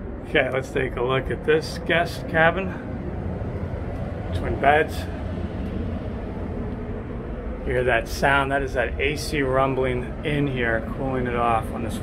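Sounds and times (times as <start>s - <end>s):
air conditioning rumbling: 0.0s - 12.0s.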